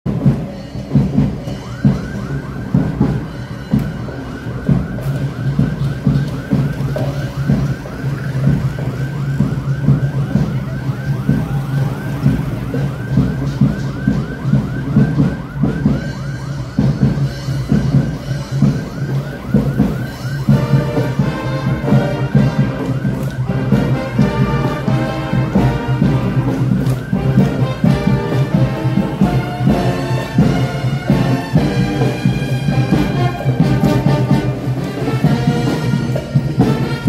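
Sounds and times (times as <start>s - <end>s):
electronic siren yelping: 1.1s - 37.0s.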